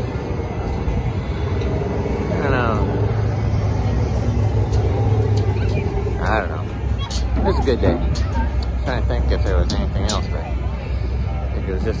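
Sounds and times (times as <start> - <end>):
car engines rumbling: 0.0 - 12.0.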